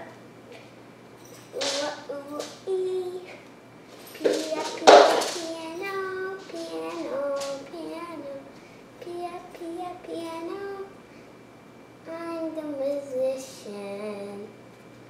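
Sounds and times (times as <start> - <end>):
girl singing wordless tune: 1.5 - 11.1, 12.0 - 14.6.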